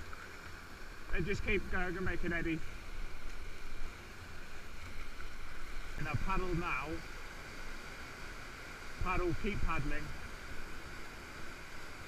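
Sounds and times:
whitewater rapids rushing: 0.0s - 12.0s.

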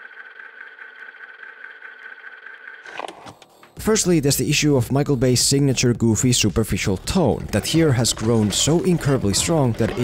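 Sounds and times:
mechanical hum with high whine: 0.0s - 3.5s.

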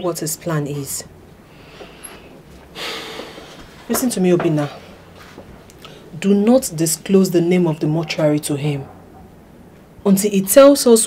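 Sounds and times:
person breathing: 1.4s - 3.8s.

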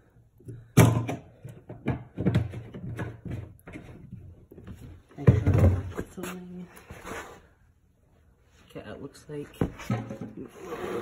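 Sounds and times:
plastic can clunking on concrete: 0.8s - 4.1s, 5.2s - 6.1s.

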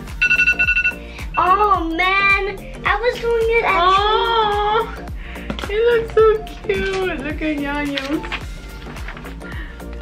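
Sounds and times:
background music with beat: 0.0s - 10.0s
phone timer alarm beep: 0.1s - 1.3s.

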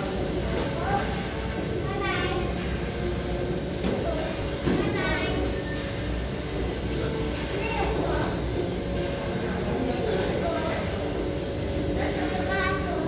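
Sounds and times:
people talking: 0.0s - 13.0s
steady low hum: 0.0s - 13.0s.

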